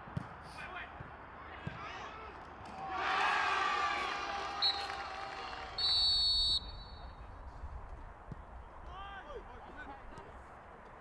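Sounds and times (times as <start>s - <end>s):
referee's whistle: 4.6s - 5.0s, 5.8s - 7.2s.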